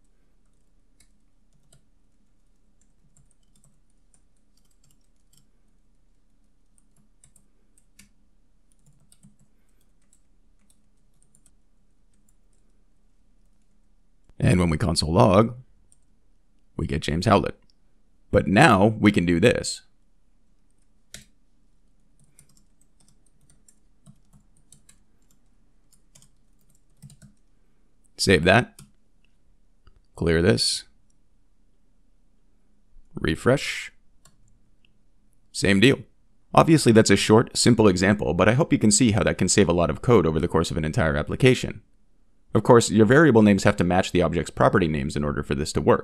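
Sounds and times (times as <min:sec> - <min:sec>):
computer keyboard typing: 0:00.4 - 0:12.8, 0:20.6 - 0:27.5.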